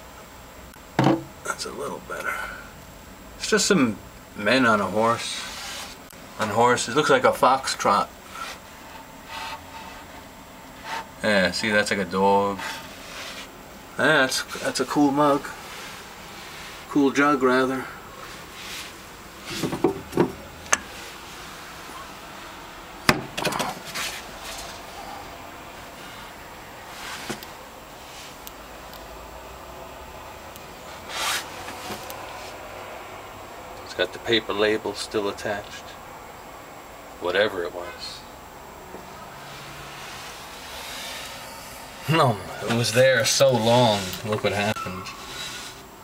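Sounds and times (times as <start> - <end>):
steady background hiss: 0.0 - 46.0.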